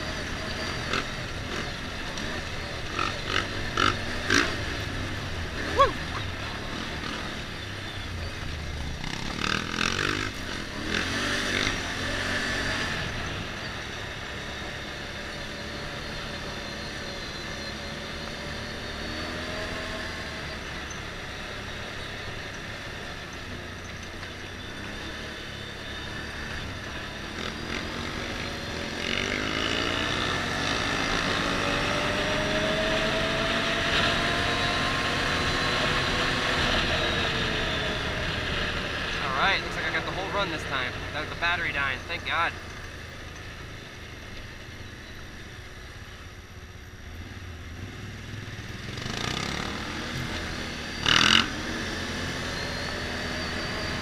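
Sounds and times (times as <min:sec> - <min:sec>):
motorcycle engine revving: 0:00.0 - 0:54.0
tyre noise: 0:05.6 - 0:07.0.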